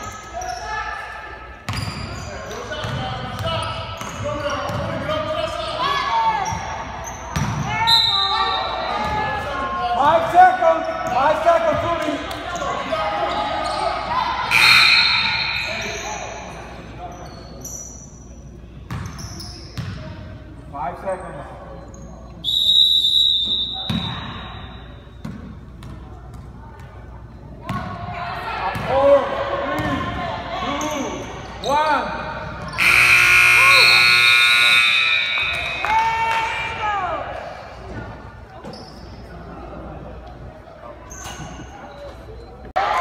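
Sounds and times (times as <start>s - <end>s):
referee's whistle: 7.7s - 8.9s, 14.5s - 16.3s, 22.4s - 25.0s, 32.7s - 36.1s
scoreboard buzzer: 32.8s - 35.8s.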